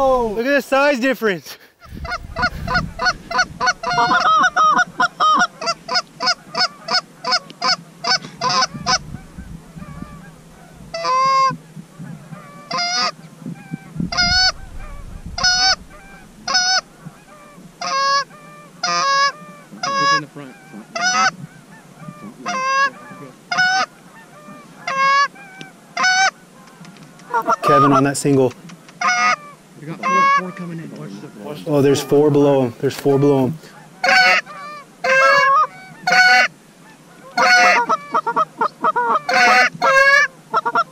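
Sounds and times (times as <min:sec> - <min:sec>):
goose call honks: 0:01.8 - 0:11.5, 0:12.4 - 0:26.4, 0:27.3 - 0:28.1, 0:29.0 - 0:32.3, 0:33.1 - 0:40.9
goose call clucks: 0:01.8 - 0:28.1, 0:29.0 - 0:32.2, 0:33.0 - 0:40.9.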